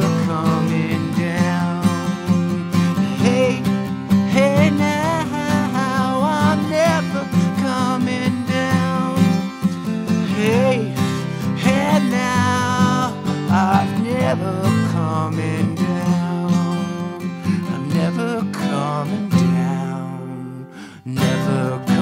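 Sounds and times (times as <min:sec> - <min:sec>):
acoustic guitar strumming: 0:00.0 - 0:22.0
man's wordless vocals: 0:00.0 - 0:22.0.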